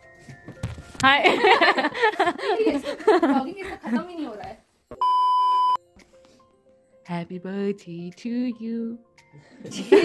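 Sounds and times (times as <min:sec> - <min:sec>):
electronic beep: 0:05.0 - 0:05.8.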